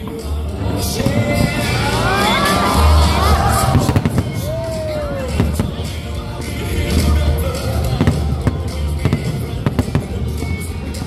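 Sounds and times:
music with heavy bass: 0:00.0 - 0:11.0
firework shells bursting: 0:00.9 - 0:02.4, 0:03.5 - 0:11.0.

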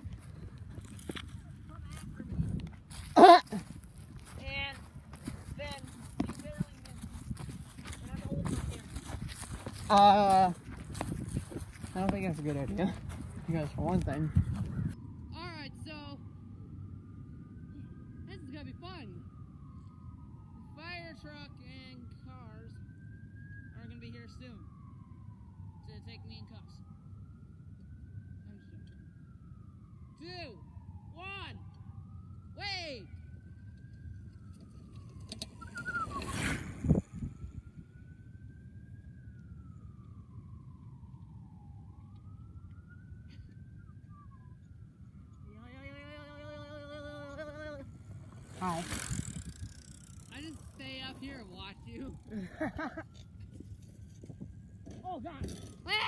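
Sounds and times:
bicycle rolling past on grass: 0:00.0 - 0:14.8, 0:34.1 - 0:37.9, 0:45.8 - 0:56.0
faint siren wailing: 0:00.0 - 0:56.0
wavering held tone: 0:34.2 - 0:37.8.

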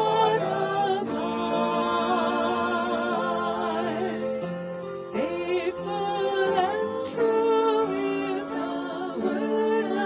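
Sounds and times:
worship singers singing a hymn: 0:00.0 - 0:10.0.

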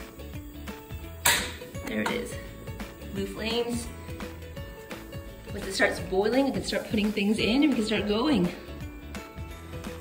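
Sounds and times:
background music: 0:00.0 - 0:10.0
gas burner catching: 0:00.8 - 0:02.4
gas stove igniter snapping: 0:00.9 - 0:02.4.

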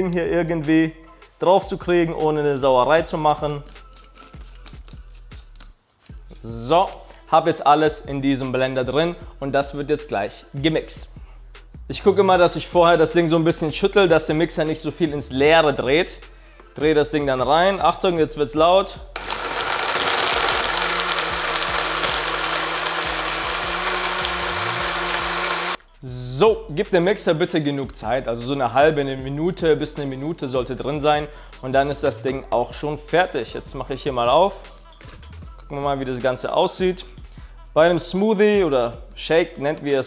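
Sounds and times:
faint background music: 0:00.0 - 0:19.2, 0:25.7 - 0:40.0
blender running: 0:19.2 - 0:25.8.

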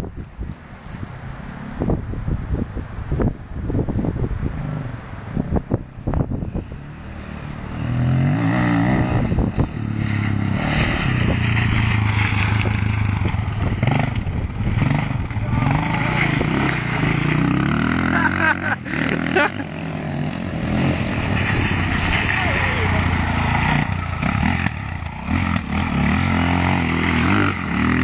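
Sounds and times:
off-road motorcycle engine revving: 0:04.4 - 0:28.0.

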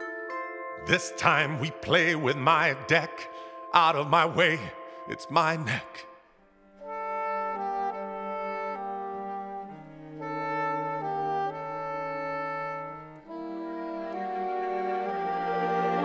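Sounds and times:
orchestra playing slow chords: 0:00.0 - 0:16.0.

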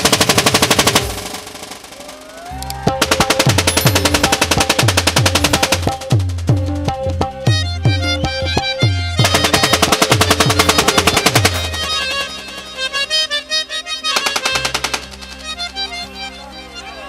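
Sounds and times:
automatic rifle firing bursts: 0:00.0 - 0:02.0, 0:09.2 - 0:12.7, 0:14.2 - 0:15.2
music with held reed-like tones: 0:01.2 - 0:17.0.

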